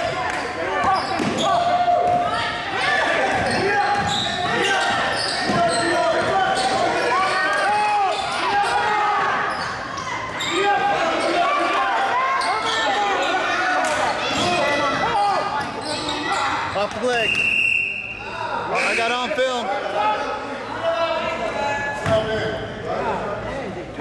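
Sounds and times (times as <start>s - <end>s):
whistle blast: 17.2s - 19.2s.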